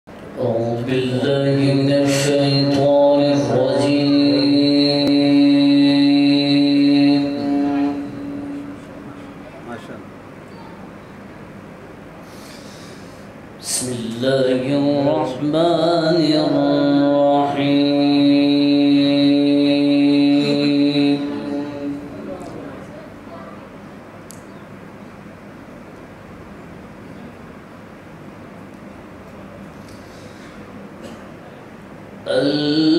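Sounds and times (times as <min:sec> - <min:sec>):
man reciting through microphone: 0:00.3 - 0:09.0, 0:13.6 - 0:23.0, 0:32.2 - 0:32.9.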